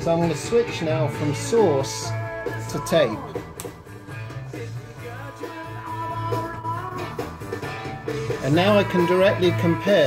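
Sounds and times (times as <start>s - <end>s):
rock music over loudspeakers: 0.0s - 10.0s.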